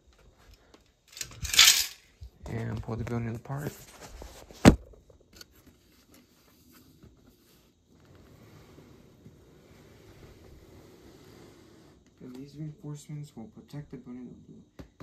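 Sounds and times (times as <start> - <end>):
faint steady rustle: 0.0 - 12.8.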